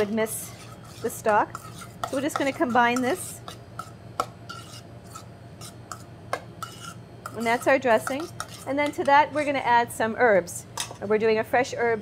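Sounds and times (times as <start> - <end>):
utensil scraping metal bowl: 0.0 - 10.0.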